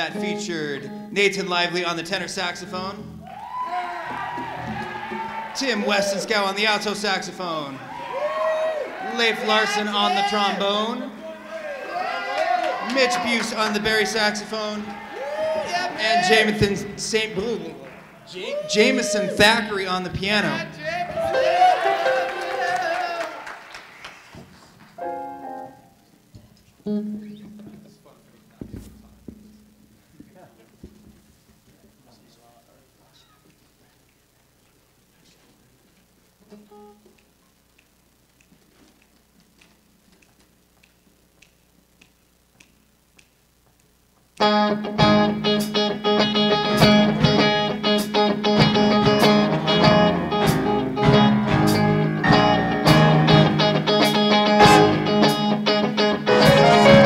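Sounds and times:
soft stage sounds: 0.0 - 57.0
drums striking: 4.2 - 5.6, 16.5 - 17.6, 28.5 - 31.6, 46.7 - 55.6, 56.3 - 57.0
jazz big band playing: 21.1 - 22.8, 44.4 - 57.0.

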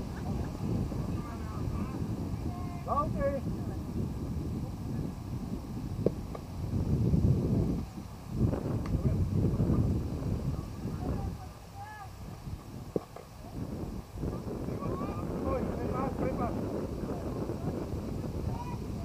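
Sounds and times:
wind noise on microphone: 0.0 - 19.0.

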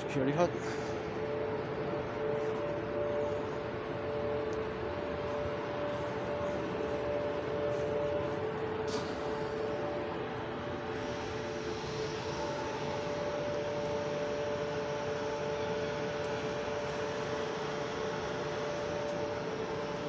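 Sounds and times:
steady machinery drone: 0.0 - 20.0.

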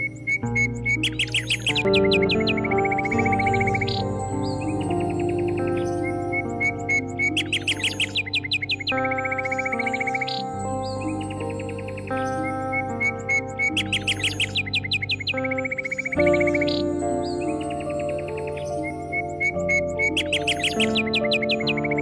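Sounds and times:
birds chirping and trilling: 0.0 - 22.0
soft meditation music: 0.0 - 22.0.

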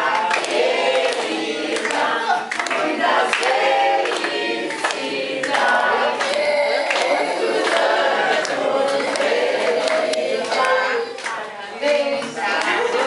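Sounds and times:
group singing birthday song: 0.0 - 13.0
rhythmic clapping: 0.0 - 13.0.

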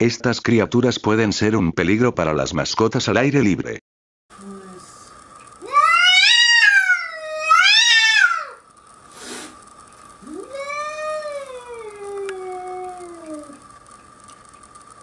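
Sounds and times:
cat yowling: 5.6 - 8.6, 10.2 - 13.6.

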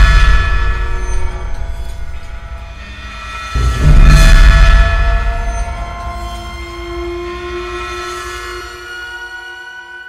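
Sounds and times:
dissonant held orchestral tones: 0.0 - 10.0.

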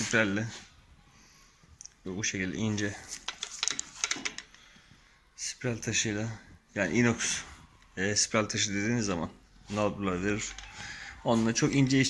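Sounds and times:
handling clicks and knocks: 3.1 - 4.6.

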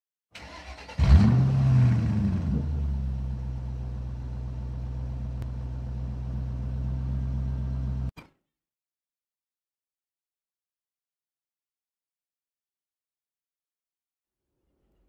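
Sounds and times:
car engine starting and idling: 0.4 - 8.1.

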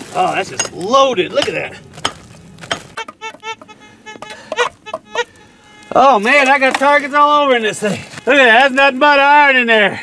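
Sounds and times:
metal detector signal tones: 2.9 - 7.5.

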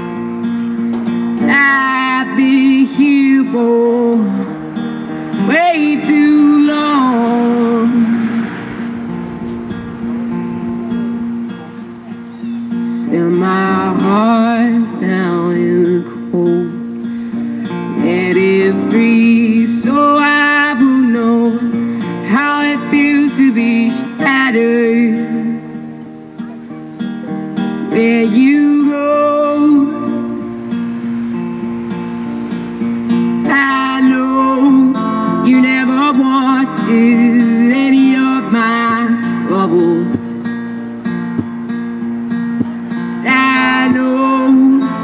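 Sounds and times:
acoustic guitar strumming: 0.0 - 45.0.

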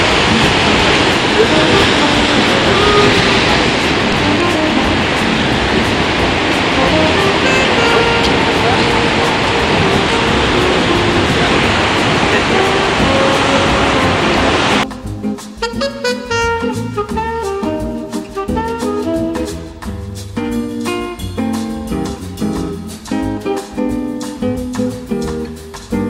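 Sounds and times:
ocean surf breaking: 0.0 - 15.0.

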